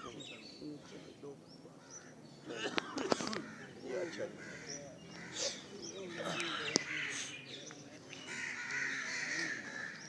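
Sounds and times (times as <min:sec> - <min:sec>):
birds calling: 0:00.0 - 0:10.0
low voices talking: 0:00.0 - 0:10.0.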